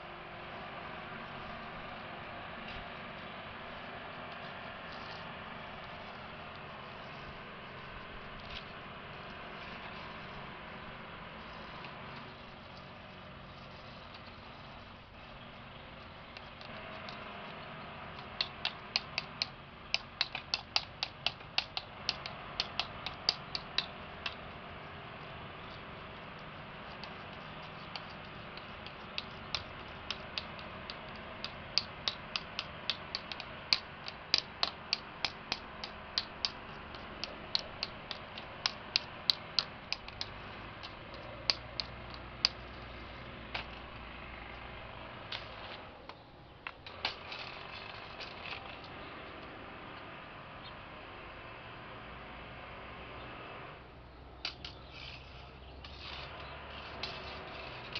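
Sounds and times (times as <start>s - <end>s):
runs of sharp clicks: 15.2s - 49.5s.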